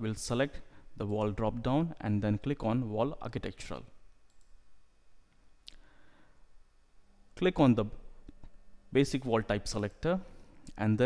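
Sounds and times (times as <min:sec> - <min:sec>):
faint computer mouse click: 0:04.3 - 0:04.5.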